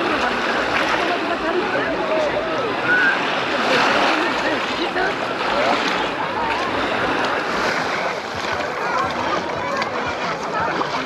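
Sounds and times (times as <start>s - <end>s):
people chattering: 0.0s - 11.0s
surf: 0.0s - 11.0s
wind: 0.0s - 11.0s.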